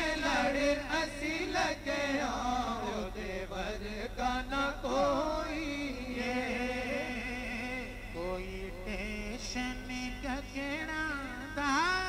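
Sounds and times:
men singing devotional song: 0.0 - 12.0.

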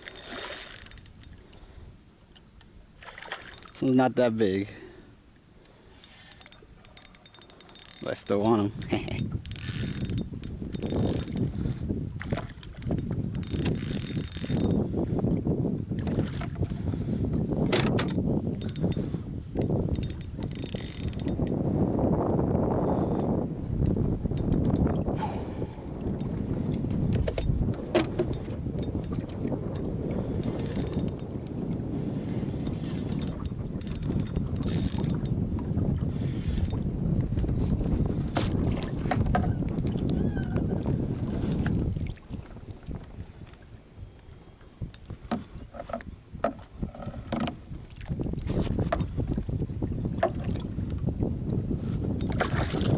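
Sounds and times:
fishing reel cranking and clicking: 0.0 - 1.4, 3.4 - 4.0, 5.6 - 11.5, 12.8 - 15.0, 18.0 - 21.6, 23.0 - 25.0, 28.2 - 31.5, 32.2 - 35.4, 36.2 - 36.8
wind noise on microphone: 0.0 - 2.1, 5.9 - 52.9.

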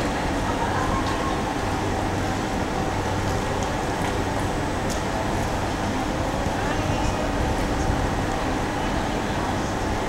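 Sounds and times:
faint crowd voices: 0.0 - 10.0
traffic and machinery hum: 0.0 - 10.0.

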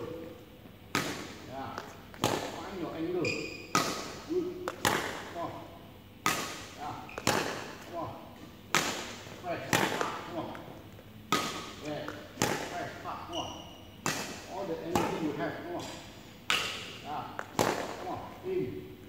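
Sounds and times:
racket hitting shuttlecock: 0.9 - 1.4, 2.1 - 2.6, 3.5 - 5.3, 6.2 - 7.9, 8.7 - 10.4, 11.3 - 12.9, 14.0 - 18.1.

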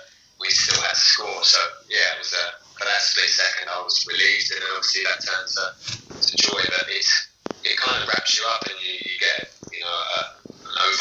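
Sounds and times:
man talking over video call: 0.0 - 11.0.

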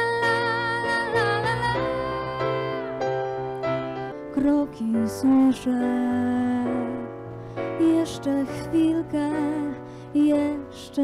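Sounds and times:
person singing with vibrato: 0.0 - 3.2
electric keyboard chords: 0.0 - 11.0.

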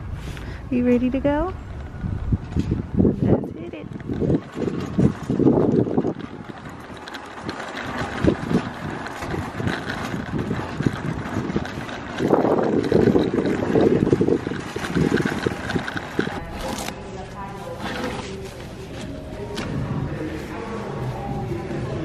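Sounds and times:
wind buffeting microphone: 0.0 - 16.9
shopping cart wheels rumbling: 0.0 - 22.0
cart frame rattling: 1.2 - 22.0.

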